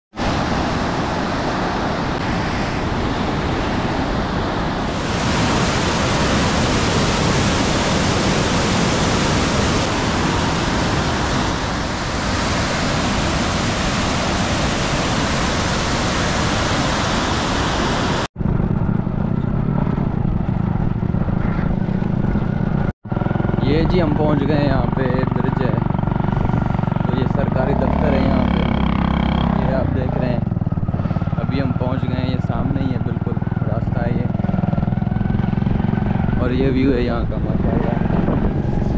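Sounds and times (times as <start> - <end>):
low dull rumble: 18.4 - 22.9.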